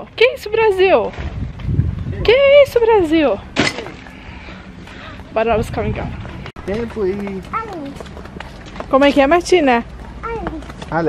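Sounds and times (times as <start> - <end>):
footsteps on pavement: 1.0 - 2.9, 4.8 - 11.0
voices talking: 2.1 - 11.0.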